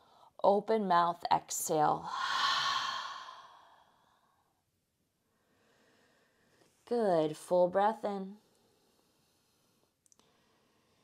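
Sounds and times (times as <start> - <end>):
sigh-like exhale: 2.1 - 4.0.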